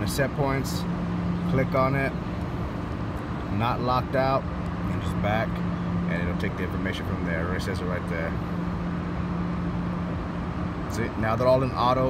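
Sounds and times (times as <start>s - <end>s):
mechanical hum and rushing: 0.0s - 12.0s.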